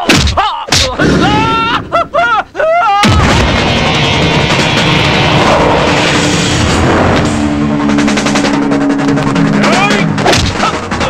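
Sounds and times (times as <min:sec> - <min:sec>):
man yelling: 0:00.4 - 0:03.1
sudden loud burst: 0:03.0 - 0:09.0
heavy fight music: 0:03.0 - 0:11.0.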